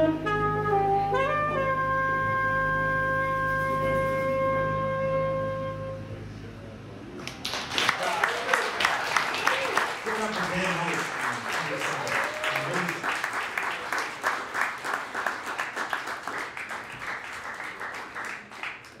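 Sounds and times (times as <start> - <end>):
audience applauding: 7.2 - 19.0.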